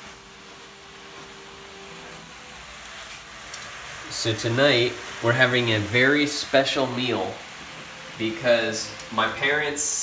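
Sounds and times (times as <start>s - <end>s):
meat sizzling in a frying pan: 0.0s - 10.0s.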